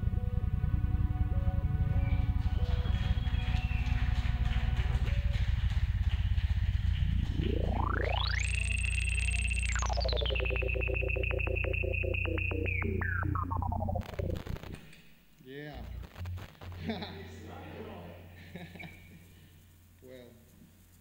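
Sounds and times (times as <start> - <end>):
low bass drone: 0.0 - 14.9
synth-like pitched tone: 6.9 - 14.9.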